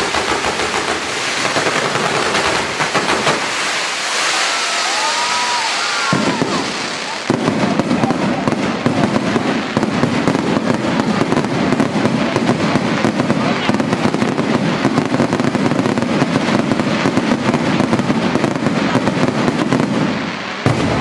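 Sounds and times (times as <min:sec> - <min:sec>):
fireworks whistles gliding in pitch: 0:00.0 - 0:16.0
fireworks bangs and crackling: 0:00.0 - 0:21.0
fireworks sparks hissing: 0:00.0 - 0:21.0.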